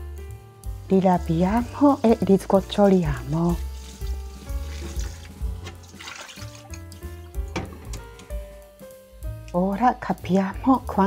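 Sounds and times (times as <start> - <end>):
background music: 0.0 - 11.0
tap water running over grains: 0.7 - 8.1.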